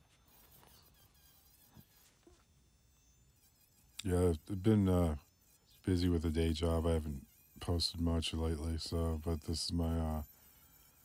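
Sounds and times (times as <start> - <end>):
rotary tool whining: 0.0 - 11.0.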